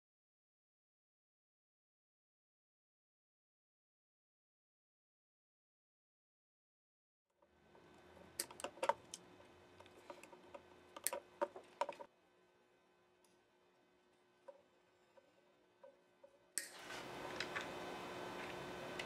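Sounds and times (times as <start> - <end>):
faint steady hum: 7.4 - 19.0.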